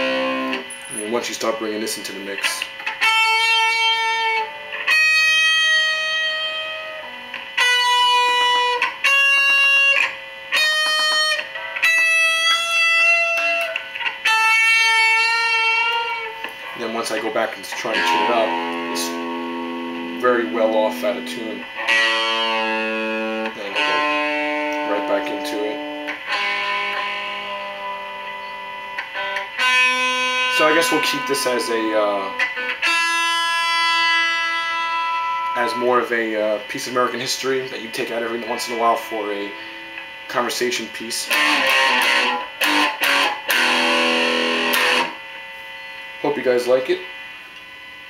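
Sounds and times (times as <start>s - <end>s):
electric guitar single notes: 0.0s - 48.0s.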